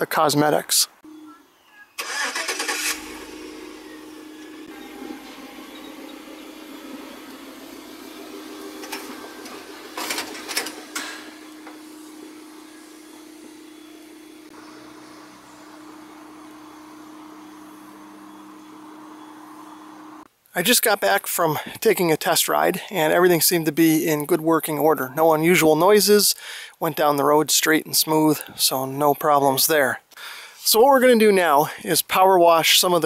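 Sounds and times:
vehicle towing trailer passing: 2.0s - 20.3s
steady hum: 2.5s - 20.3s.

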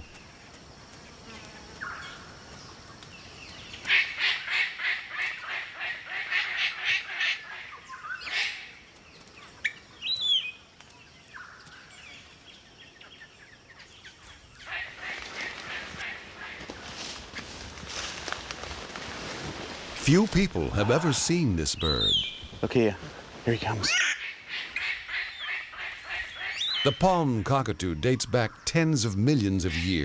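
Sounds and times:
cockatoo harsh calls: 14.6s - 16.7s, 23.6s - 26.9s.

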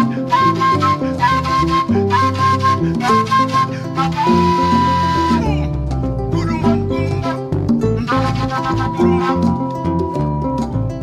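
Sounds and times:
ensemble of kora violin and drums: 0.0s - 11.0s.

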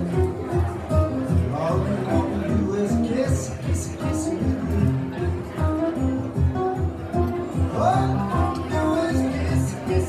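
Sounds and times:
acoustic guitars playing: 0.0s - 10.0s.

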